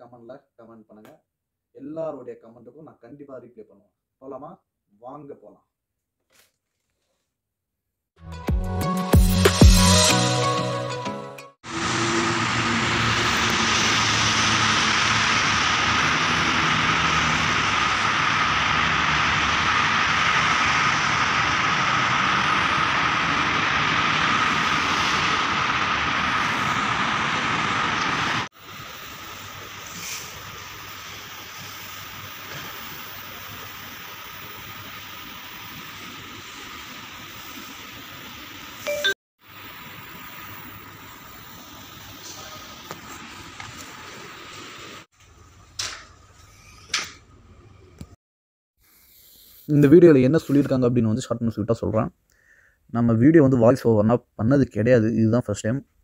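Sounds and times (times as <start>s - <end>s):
city traffic noise: 11.6s - 30.3s.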